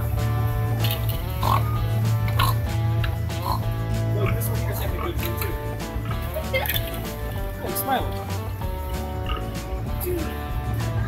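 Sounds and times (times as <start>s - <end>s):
background music: 0.0s - 11.0s
pigs grunting: 0.9s - 2.7s, 3.3s - 7.5s, 9.1s - 9.6s.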